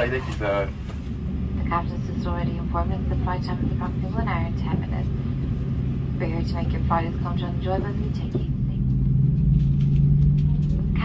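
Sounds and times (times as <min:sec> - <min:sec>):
airplane cabin drone: 0:00.0 - 0:11.0.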